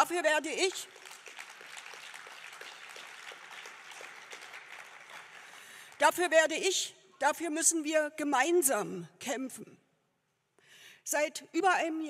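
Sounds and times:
audience applauding: 0:00.6 - 0:06.0.

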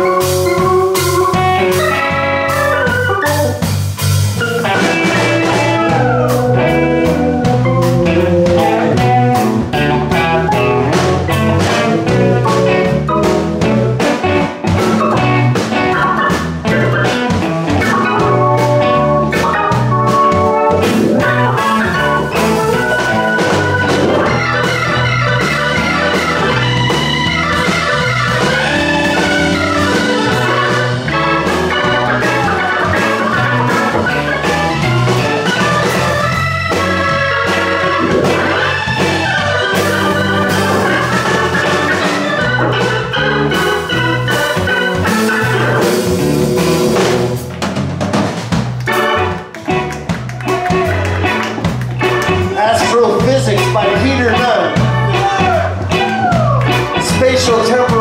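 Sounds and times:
blues band playing: 0:00.0 - 0:58.0
drum kit with cymbal strikes: 0:00.0 - 0:58.0
electric bass: 0:00.0 - 0:58.0
organ keyboard chords: 0:00.0 - 0:58.0.

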